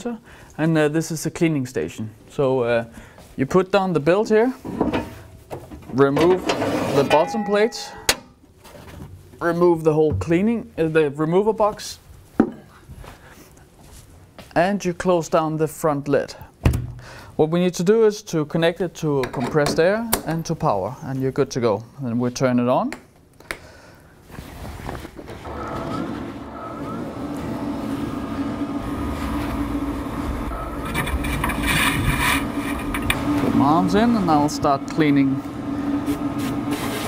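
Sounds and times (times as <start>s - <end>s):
grinder motor humming: 25.5s - 35.6s.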